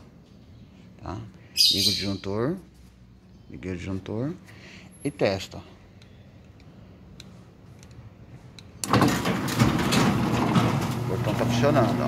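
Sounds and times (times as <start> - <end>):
gate opener motor running: 8.8 - 12.0.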